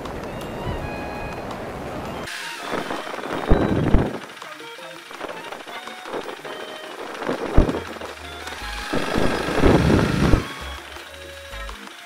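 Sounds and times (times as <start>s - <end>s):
rushing ride noise: 0.0s - 12.0s
motorcycle engine and wind rumble: 2.9s - 4.2s, 7.0s - 8.1s, 8.9s - 10.5s.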